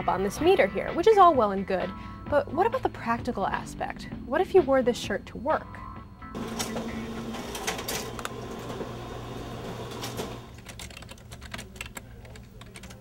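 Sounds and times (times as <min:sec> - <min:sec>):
printer clattering: 0:06.4 - 0:11.0
keyboard typing: 0:09.8 - 0:13.0.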